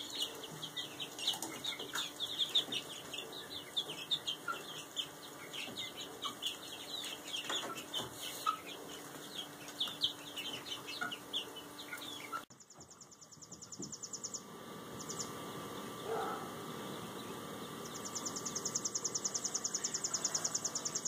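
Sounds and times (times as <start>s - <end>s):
chicks peeping: 0.0s - 21.0s.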